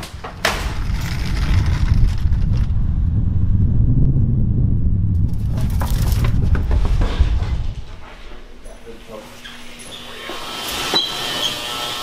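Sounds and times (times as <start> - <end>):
dolly wheels rolling on concrete: 0.1 - 2.7.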